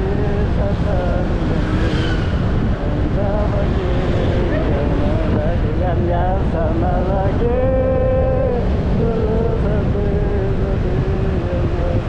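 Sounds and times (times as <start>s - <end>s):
motorcycle road noise: 0.0s - 12.0s
wind rush on microphone: 0.0s - 12.0s.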